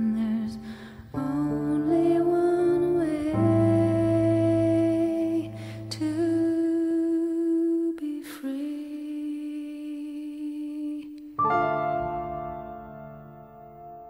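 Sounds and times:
slow soft ballad music: 0.0 - 8.0, 11.0 - 14.0.

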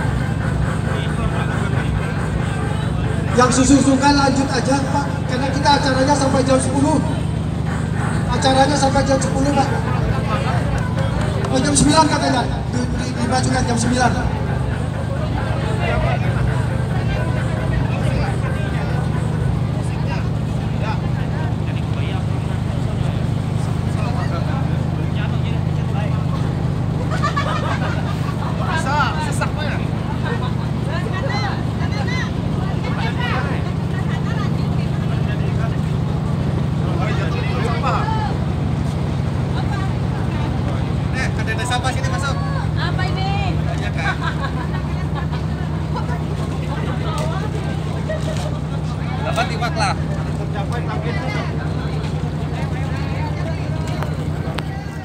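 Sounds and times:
boat engine idling: 0.0 - 55.0
people talking: 0.0 - 55.0.

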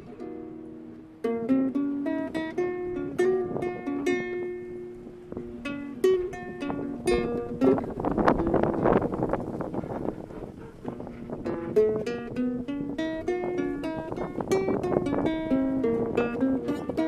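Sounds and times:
ukulele playing: 0.0 - 17.0.

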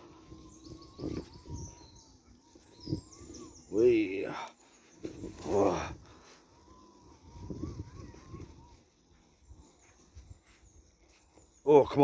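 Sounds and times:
electric motor whine: 0.0 - 9.0
birds chirping: 0.0 - 12.0.

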